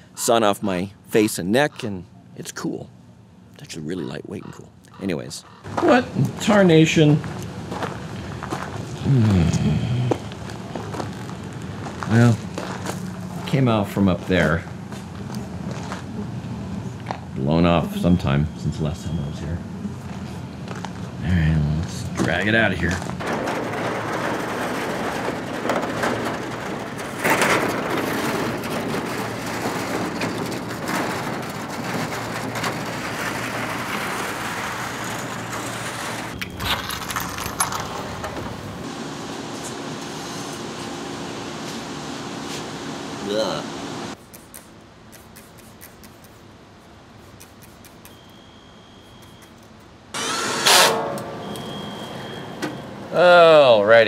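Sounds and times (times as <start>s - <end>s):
steady hum: 0.0s - 54.0s
metal panel scraping on gravel: 22.3s - 38.8s.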